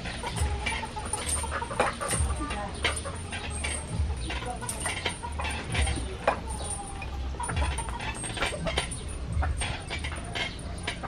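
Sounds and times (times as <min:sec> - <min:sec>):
steel chains clinking: 0:00.0 - 0:11.0.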